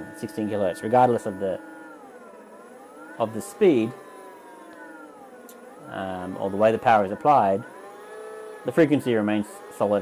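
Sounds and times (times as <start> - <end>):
electric motor whine: 0.0 - 10.0.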